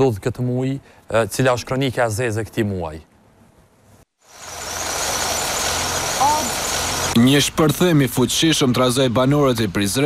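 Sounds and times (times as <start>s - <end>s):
truck engine rumbling: 4.3s - 8.3s.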